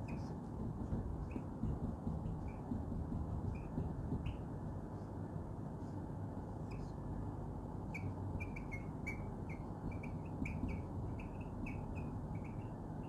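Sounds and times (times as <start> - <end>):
marker squeaking on whiteboard: 0.0 - 4.6, 7.9 - 13.0
low background noise: 0.0 - 13.0.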